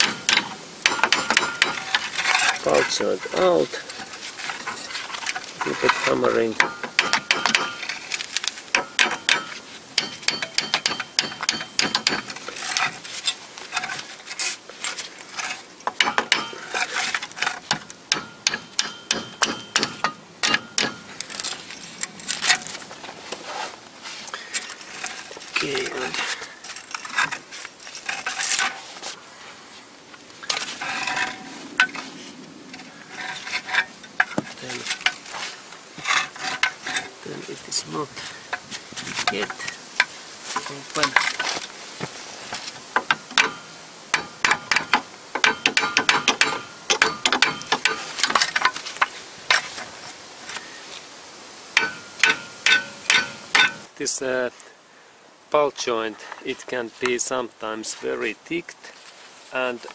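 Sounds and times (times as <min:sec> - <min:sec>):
hammer striking steel: 0:00.0 - 0:02.0, 0:06.6 - 0:07.9, 0:08.7 - 0:12.3, 0:16.0 - 0:16.6, 0:18.1 - 0:21.1, 0:43.1 - 0:48.0, 0:51.8 - 0:53.9.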